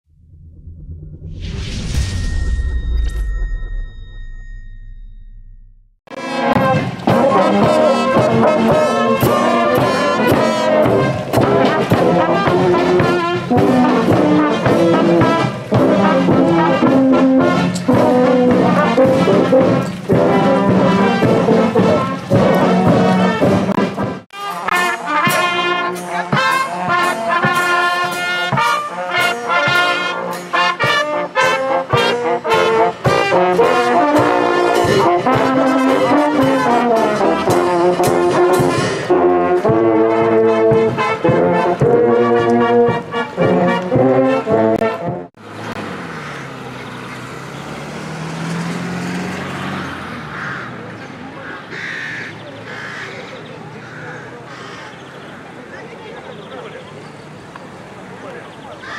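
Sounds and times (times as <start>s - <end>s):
brass band playing: 6.1s - 45.5s
outdoor voices: 6.1s - 58.9s.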